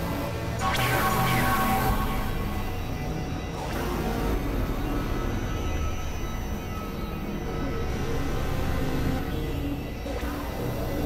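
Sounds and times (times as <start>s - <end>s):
electronic drone music: 0.0s - 11.0s.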